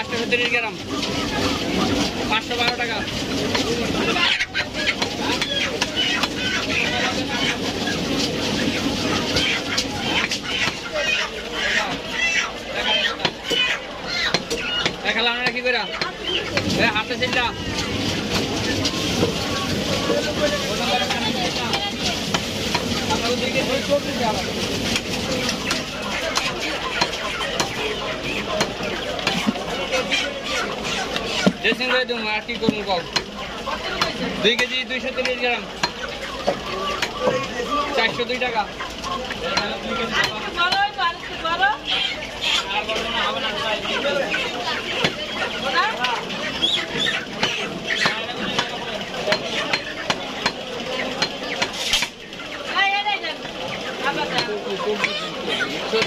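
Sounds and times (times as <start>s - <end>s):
murmur of voices: 0.0s - 56.0s.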